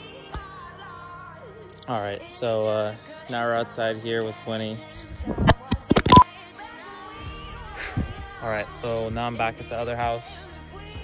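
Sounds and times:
short beep: 0:06.0 - 0:06.2.

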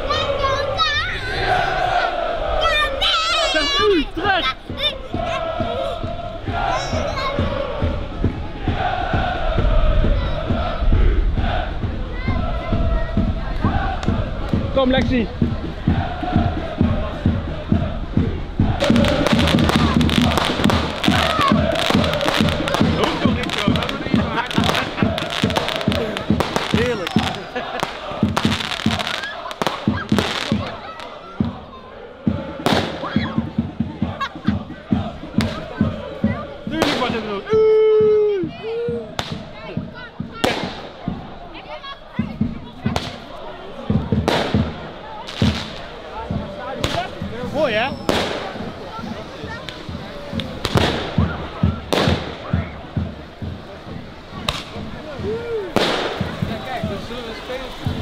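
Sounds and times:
crowd of supporters' voices: 0:00.0 - 0:58.0
firecrackers banging: 0:12.8 - 0:31.6, 0:32.2 - 0:37.5, 0:39.2 - 0:58.0.

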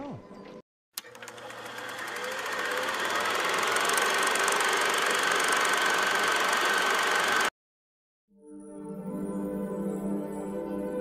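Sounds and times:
film projector running: 0:01.0 - 0:07.6.

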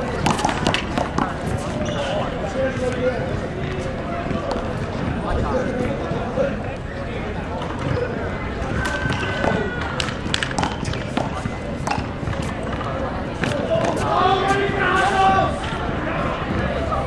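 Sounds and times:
sharp taps on concrete: 0:00.2 - 0:01.4.

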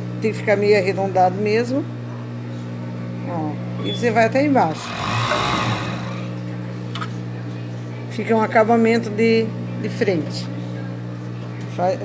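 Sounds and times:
steady hum: 0:04.3 - 0:07.0
overlock sewing machine stitching: 0:04.7 - 0:06.3.

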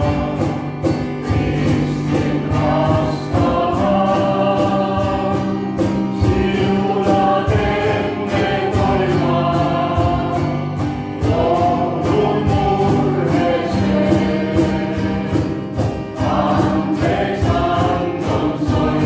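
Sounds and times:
choir singing a hymn: 0:00.0 - 0:19.0
strummed guitar: 0:00.0 - 0:19.0.

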